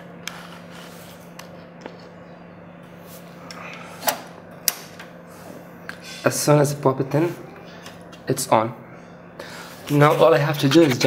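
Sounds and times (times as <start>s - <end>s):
device humming: 0.0s - 11.0s.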